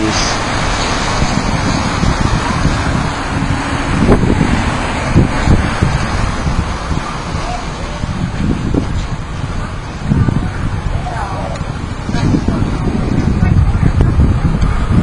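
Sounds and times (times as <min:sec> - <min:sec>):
outdoor street noise hiss: 0:00.0 - 0:15.0
wind buffeting microphone: 0:00.0 - 0:15.0.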